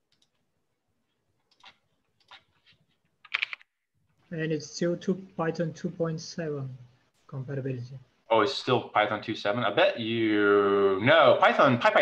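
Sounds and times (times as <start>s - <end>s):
computer keyboard typing: 0.0s - 0.4s, 1.4s - 3.7s.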